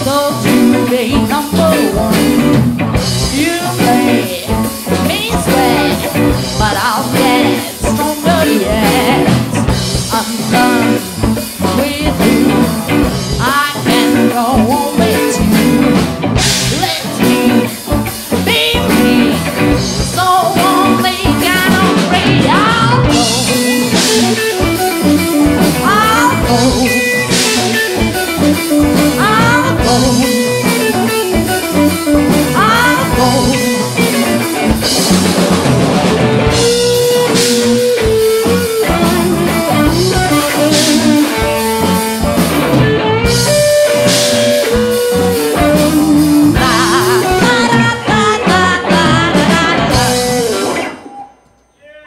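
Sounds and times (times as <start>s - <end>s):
drum kit: 0.0s - 51.2s
electric guitars: 0.0s - 51.5s.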